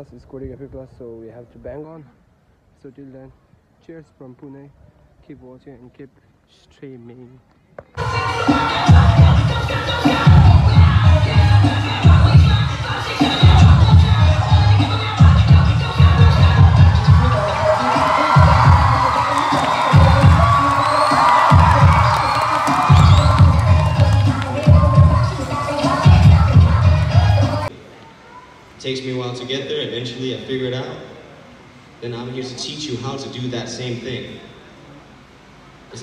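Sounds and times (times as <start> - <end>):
crowd cheering and shouting: 8.0 - 27.7
loud dance music: 8.0 - 27.7.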